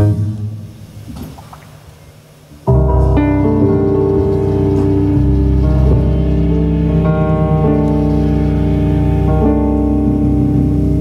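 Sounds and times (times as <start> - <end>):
blues band playing: 2.7 - 11.0
held organ chords: 2.7 - 11.0.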